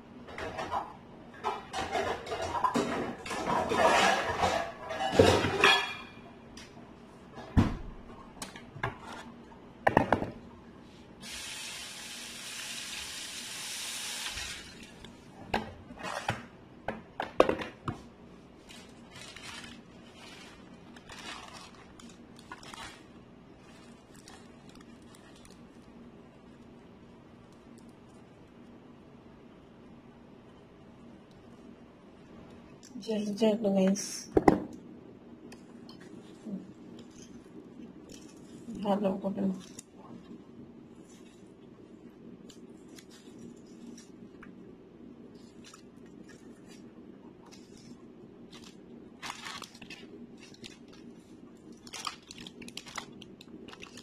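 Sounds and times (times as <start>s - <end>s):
dishes and utensils clattering: 0.3s - 6.3s.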